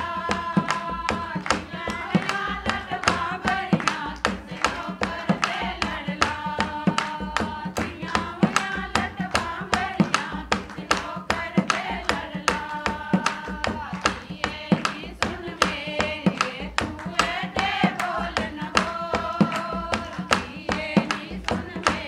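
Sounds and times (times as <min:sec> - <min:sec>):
hand clapping: 0:00.0 - 0:22.0
hand drum playing: 0:00.0 - 0:22.0
women singing in unison: 0:00.0 - 0:22.0.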